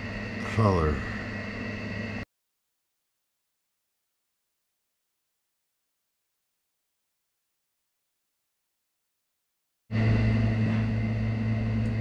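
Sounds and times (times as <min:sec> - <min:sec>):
low hum with high whine: 0:00.0 - 0:02.3, 0:09.9 - 0:12.0.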